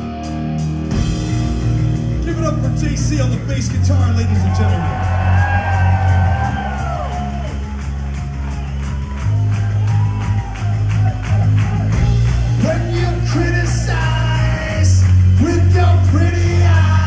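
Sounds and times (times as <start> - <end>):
electric bass low notes: 0.0 - 17.0
drum beat with cymbals: 0.6 - 17.0.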